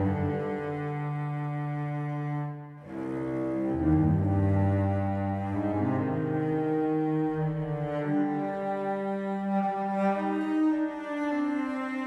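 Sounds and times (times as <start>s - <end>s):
slow bowed cello: 0.0s - 12.0s.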